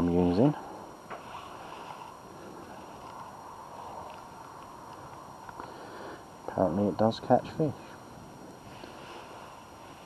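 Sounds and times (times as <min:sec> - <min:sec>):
low outdoor hiss: 0:00.0 - 0:10.0.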